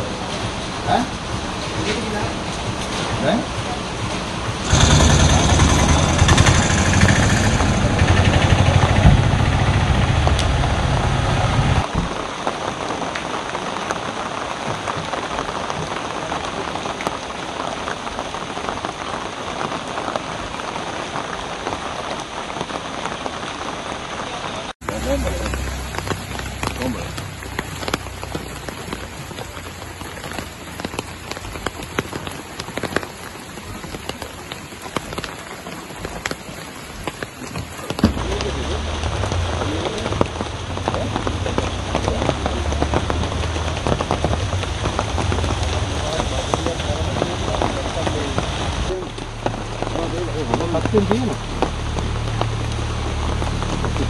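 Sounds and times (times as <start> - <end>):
low rumble: 0.0 - 11.9, 38.1 - 54.0
raindrops ticking on surfaces: 0.0 - 54.0
steady rain falling: 0.0 - 54.0.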